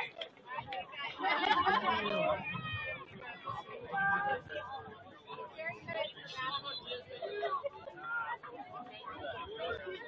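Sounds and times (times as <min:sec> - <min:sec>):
voices calling out and chattering: 0:00.0 - 0:10.0.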